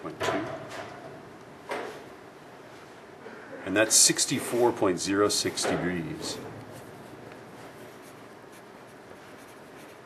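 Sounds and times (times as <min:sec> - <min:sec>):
pencil writing on paper: 0:07.8 - 0:10.0.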